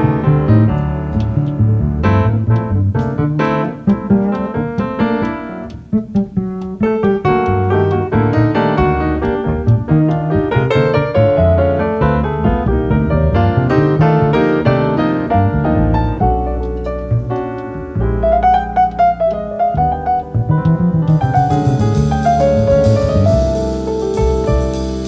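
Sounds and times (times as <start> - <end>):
jazz piano chords and runs: 0.0 - 25.0
plucked double bass: 0.0 - 25.0.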